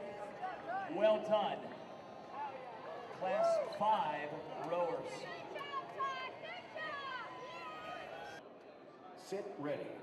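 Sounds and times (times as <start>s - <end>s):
large hall noise: 0.0s - 10.0s.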